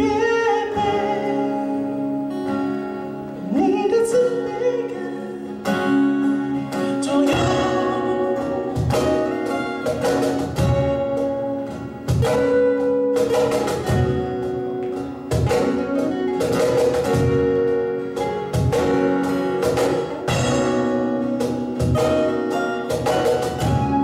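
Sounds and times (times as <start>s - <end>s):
acoustic guitars playing chords: 0.0s - 24.0s
cajon beating rhythm: 0.0s - 24.0s.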